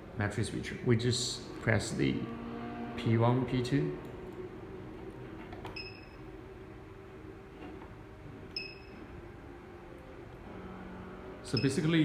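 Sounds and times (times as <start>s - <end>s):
short electronic beeps: 5.8s - 6.2s, 8.6s - 9.0s.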